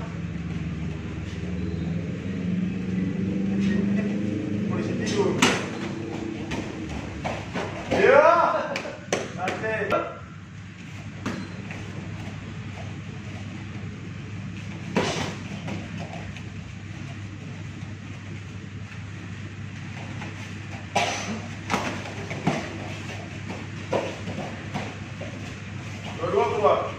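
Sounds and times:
low hum: 0.0s - 9.1s.

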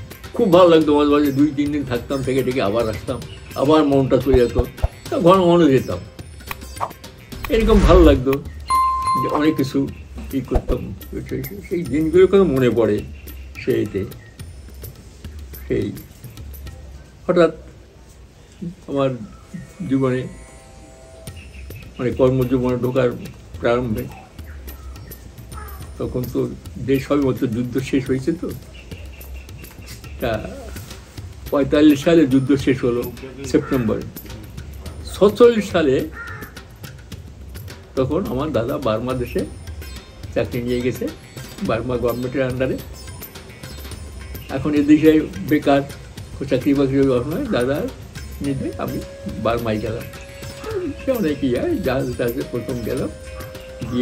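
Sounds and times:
soft background music: 0.0s - 54.0s
man speaking: 7.4s - 9.9s
man's voice: 7.4s - 9.9s
notification bell chime: 8.7s - 9.8s
crow cawing: 25.6s - 25.9s, 33.6s - 33.8s, 36.0s - 36.7s.

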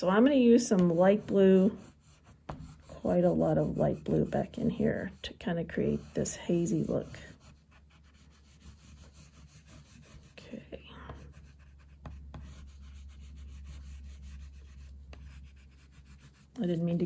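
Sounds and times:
oil pastel scratching on paper: 0.0s - 17.0s.

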